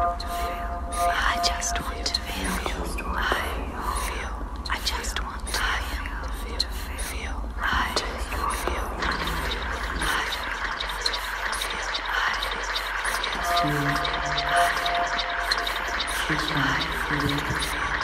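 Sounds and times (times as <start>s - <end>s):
layered whispering voices: 0.0s - 18.0s
steady low hum: 0.0s - 18.0s.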